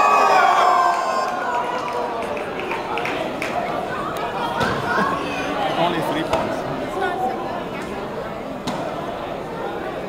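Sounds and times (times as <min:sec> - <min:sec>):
spectators shouting and cheering: 0:00.0 - 0:08.2
murmur of chatter: 0:00.0 - 0:10.0.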